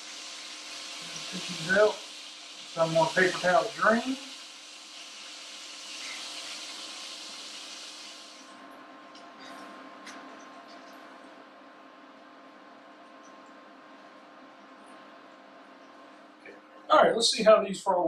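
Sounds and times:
oil sizzling in a skillet: 0.0s - 8.6s
faint steady hum: 0.0s - 18.0s.

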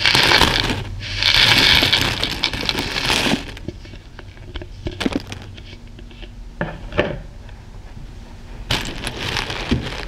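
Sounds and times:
small beads pouring clatter: 0.0s - 3.6s.

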